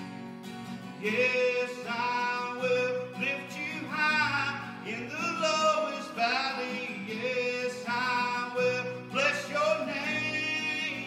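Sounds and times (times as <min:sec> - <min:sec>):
acoustic guitar: 0:00.0 - 0:11.0
man singing worship song: 0:01.0 - 0:11.0.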